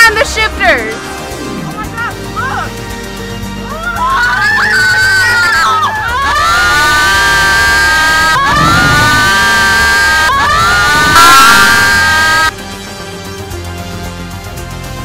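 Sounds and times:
music: 0.0s - 15.0s
girls screaming: 3.7s - 12.5s.

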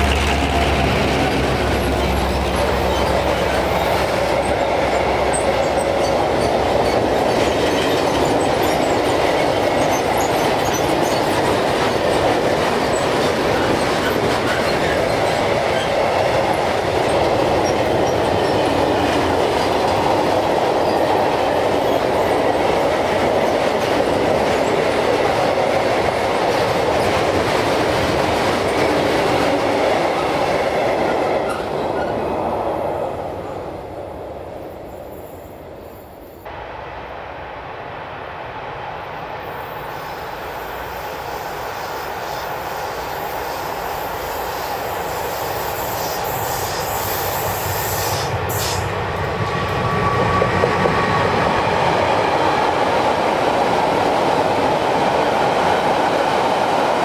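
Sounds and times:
freight train wheels on rails: 0.0s - 57.0s.

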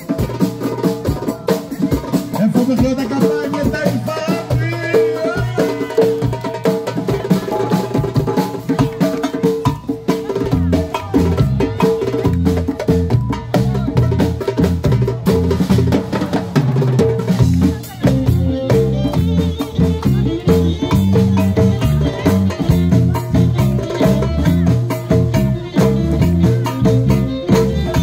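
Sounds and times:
drum kit: 0.0s - 28.0s
hand drums in fast rhythm: 0.0s - 28.0s
low bass guitar line: 17.3s - 28.0s.

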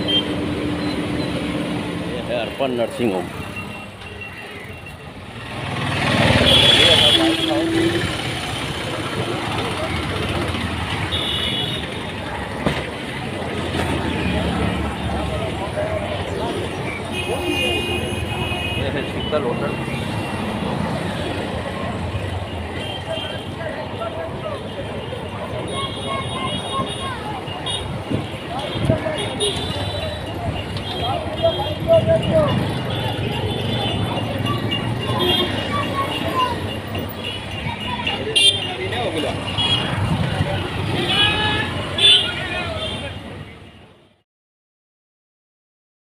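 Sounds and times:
passers-by voices: 0.0s - 44.2s
vehicle engines rumbling: 0.0s - 44.2s.

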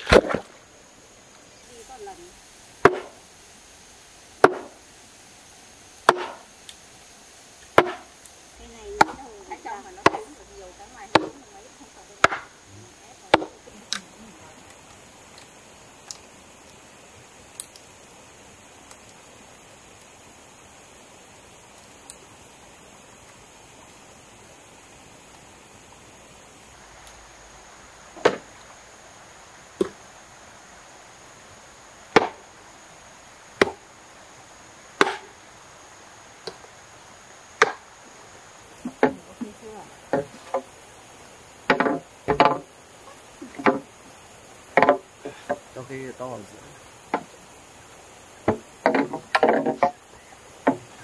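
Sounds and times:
machete chopping bamboo: 0.0s - 0.5s, 2.8s - 3.2s, 4.4s - 4.8s, 6.0s - 6.5s, 7.8s - 8.1s, 10.0s - 10.2s, 11.1s - 11.4s, 12.2s - 12.5s, 13.3s - 13.5s, 32.1s - 32.4s, 33.6s - 33.8s, 35.0s - 35.3s, 37.6s - 37.8s.

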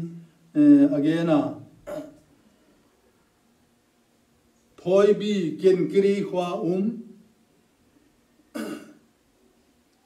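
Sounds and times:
man clearing his throat: 1.8s - 2.3s, 8.6s - 9.0s.

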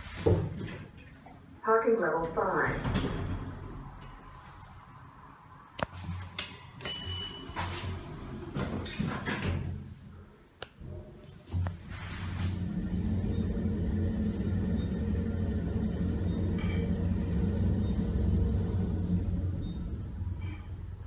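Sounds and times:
elevator low hum: 0.0s - 21.0s
elevator doors clunking shut: 2.1s - 4.3s, 6.6s - 9.9s, 12.6s - 21.0s.

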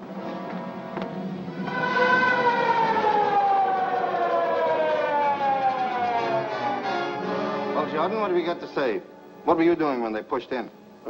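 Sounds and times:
mechanical siren wail falling: 1.5s - 7.7s.

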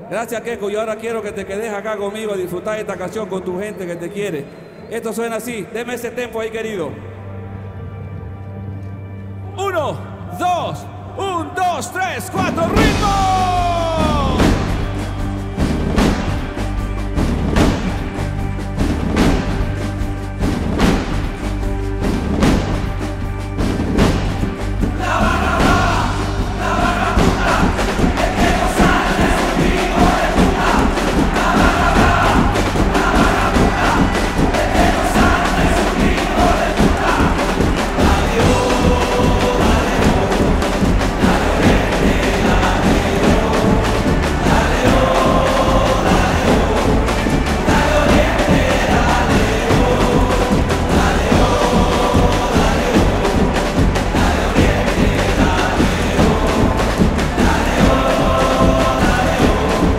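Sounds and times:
stadium crowd chanting: 10.1s - 16.8s, 23.8s - 59.9s
live band with heavy drumming: 12.4s - 59.9s.

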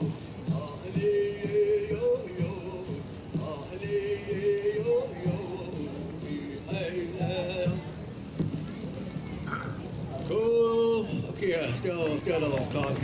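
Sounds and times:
steady drumbeat: 0.0s - 10.0s.

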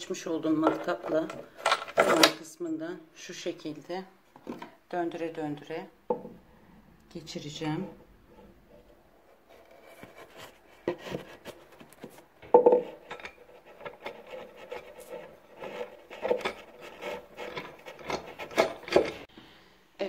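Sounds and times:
bolt threads rasping on wood: 12.6s - 19.3s.

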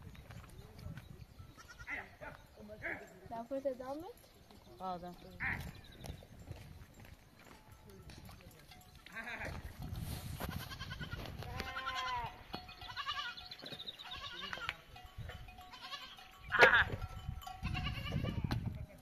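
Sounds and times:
livestock bleating: 1.6s - 2.2s, 9.1s - 9.7s, 10.4s - 14.9s, 15.7s - 17.0s, 17.6s - 18.5s.

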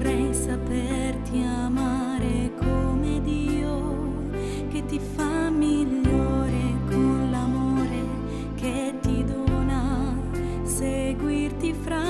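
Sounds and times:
slow devotional song: 0.0s - 12.0s
sustained low bass chords: 0.0s - 12.0s.

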